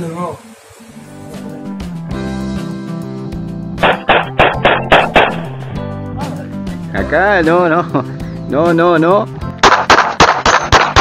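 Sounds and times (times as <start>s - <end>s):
guitar background music: 0.9s - 9.7s
pistol shots: 3.8s - 5.6s, 9.6s - 11.0s.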